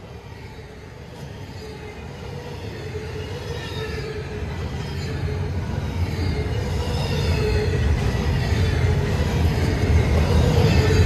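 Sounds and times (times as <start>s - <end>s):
train wheels rumbling: 0.0s - 11.0s.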